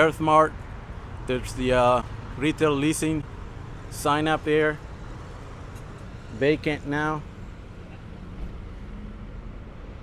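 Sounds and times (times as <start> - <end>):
city street traffic hum: 0.0 - 10.0.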